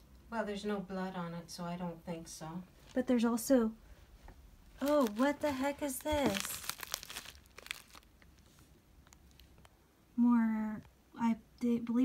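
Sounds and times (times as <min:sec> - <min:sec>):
plastic bag crinkling: 0:04.7 - 0:09.7.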